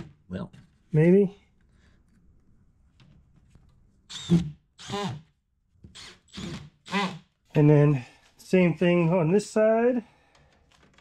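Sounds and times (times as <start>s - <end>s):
cordless drill driving screws: 4.1s - 5.3s, 5.9s - 7.3s.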